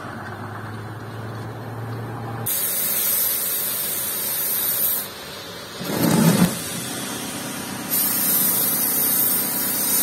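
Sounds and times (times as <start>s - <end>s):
paint spray gun hissing: 2.5s - 10.0s.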